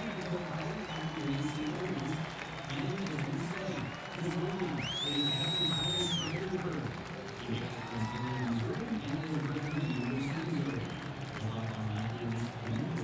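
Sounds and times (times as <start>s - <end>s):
applause: 0.0s - 13.0s
crowd talking and calling: 0.0s - 13.0s
high whistles: 4.8s - 6.4s.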